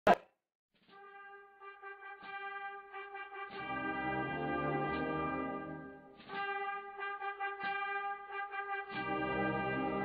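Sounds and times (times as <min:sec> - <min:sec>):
brass chords: 0:00.9 - 0:10.0.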